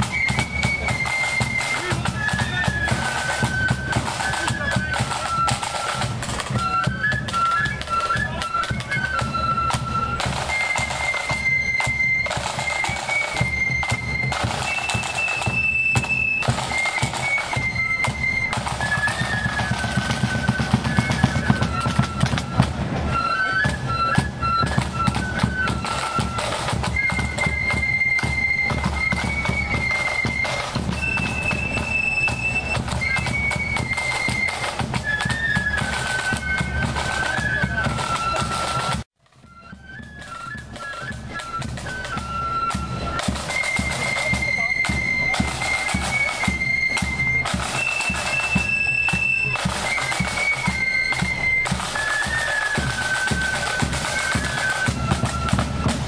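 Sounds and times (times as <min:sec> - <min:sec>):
flutes playing a tune: 0:00.0 - 0:56.0
snare drums: 0:00.0 - 0:56.0.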